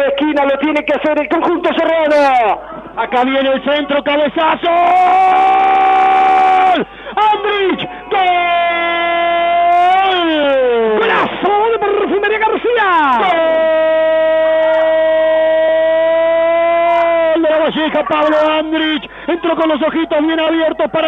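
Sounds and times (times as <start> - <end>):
commentator's drawn-out goal cry: 1.3 - 21.0.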